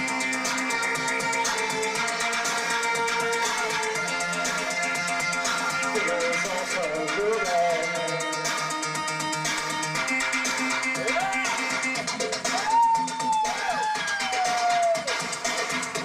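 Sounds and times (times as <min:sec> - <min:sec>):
synthpunk music: 0:00.0 - 0:16.0
person singing into microphone: 0:05.9 - 0:08.4.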